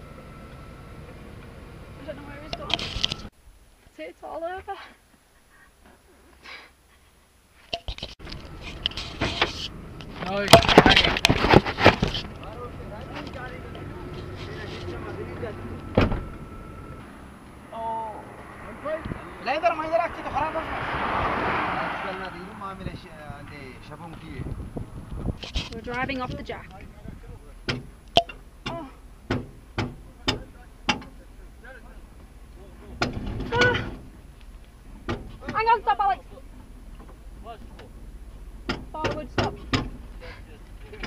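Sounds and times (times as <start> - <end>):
vehicle cabin rumble: 0.0 - 3.3, 8.1 - 17.6, 22.7 - 41.0
sharp clunks of motorhome on jack: 15.9 - 16.4.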